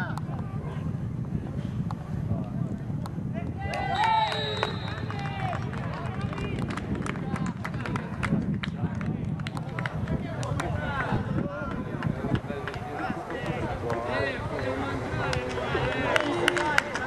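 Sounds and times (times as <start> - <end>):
low rumble of outdoor pitch: 0.0 - 17.0
players shouting and yelling: 3.3 - 6.6, 9.9 - 17.0.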